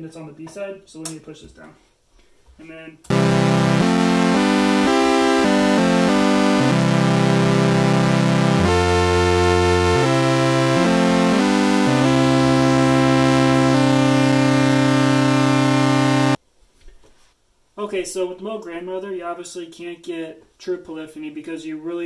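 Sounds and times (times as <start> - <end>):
synthesizer sustained chords: 3.1 - 16.4.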